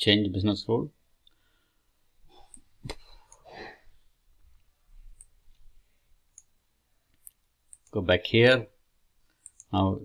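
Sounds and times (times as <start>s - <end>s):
low room noise: 0.0s - 10.0s
computer mouse clicks: 6.3s - 6.5s, 7.1s - 8.0s, 9.3s - 9.7s.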